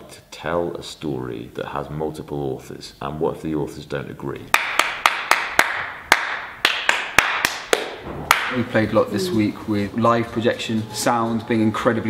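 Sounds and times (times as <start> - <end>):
people clapping: 4.5 - 8.7.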